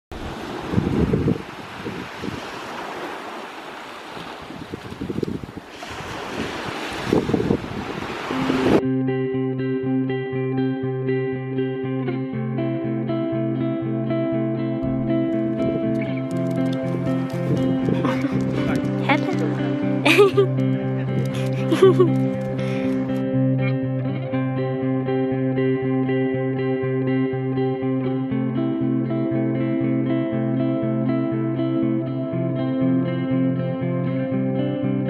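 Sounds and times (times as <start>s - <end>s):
wind buffeting microphone: 0.1s - 3.4s, 4.0s - 8.8s, 14.8s - 23.2s
small waves washing on shore: 0.1s - 8.8s, 14.8s - 23.2s
instrumental rock-pop music: 8.8s - 35.0s.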